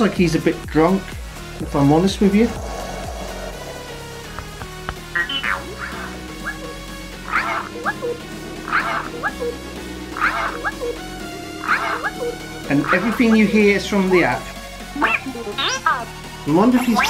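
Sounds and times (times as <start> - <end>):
steady low tone: 1.6 - 12.7
robot chirps and warbles: 5.1 - 11.0, 11.6 - 13.6, 15.0 - 16.1, 16.8 - 17.0.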